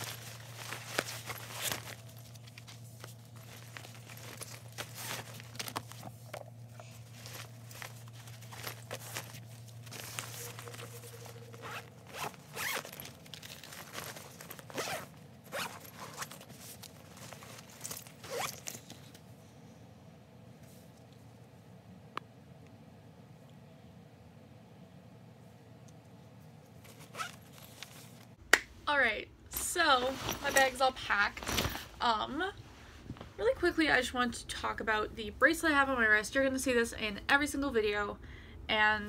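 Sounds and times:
books being handled: 0.0 - 19.2, 29.8 - 31.9
bag zipper pulled: 9.9 - 13.2, 14.0 - 16.4, 18.2 - 18.7.

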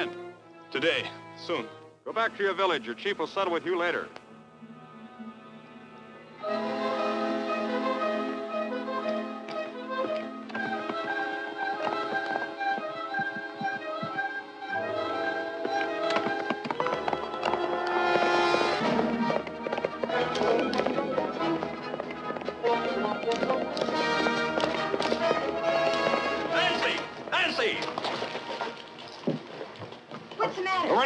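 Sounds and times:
horse hooves knocking: 9.0 - 31.0
orchestral action music: 17.2 - 28.8.

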